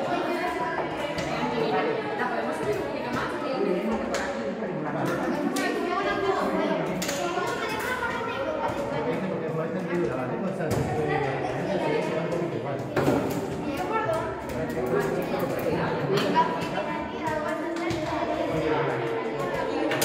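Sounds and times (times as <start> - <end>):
children chattering: 0.0 - 20.0.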